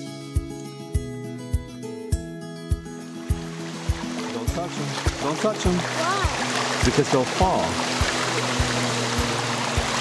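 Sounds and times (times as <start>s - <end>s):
background music with soft beat: 0.0s - 10.0s
mountain stream rushing: 3.2s - 10.0s.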